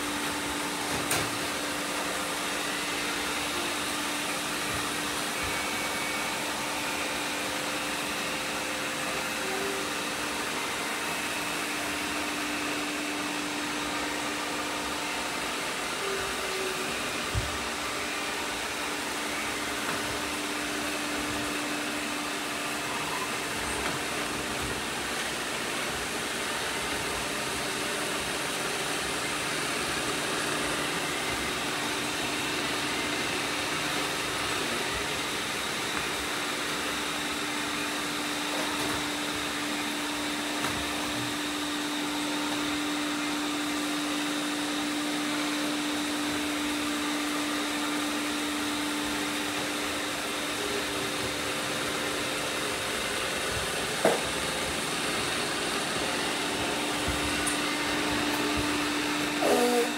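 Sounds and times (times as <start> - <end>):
robot vacuum cleaners whirring: 0.0 - 59.9.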